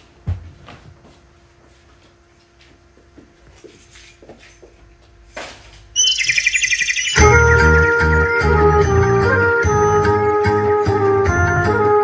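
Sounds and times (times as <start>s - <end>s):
birds chirping: 6.0s - 7.8s.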